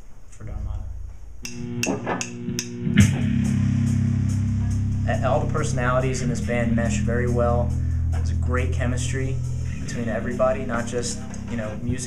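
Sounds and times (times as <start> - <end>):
low ringing guitar notes: 0.8 - 12.0.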